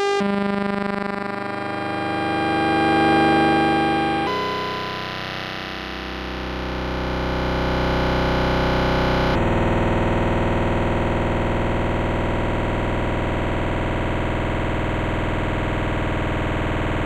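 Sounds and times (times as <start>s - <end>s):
buzzy synth notes: 0.0s - 9.4s.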